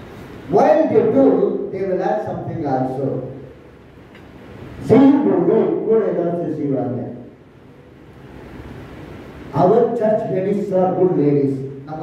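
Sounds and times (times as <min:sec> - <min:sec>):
low steady rumble: 0:00.0 - 0:12.0
man speaking into microphone: 0:00.5 - 0:03.5, 0:04.8 - 0:07.3, 0:09.5 - 0:12.0.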